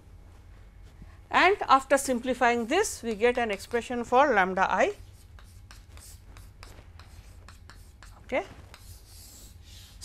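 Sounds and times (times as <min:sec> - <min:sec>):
chalk scraping on chalkboard: 0:04.8 - 0:10.0
chalk tapping and scratching: 0:04.8 - 0:10.0.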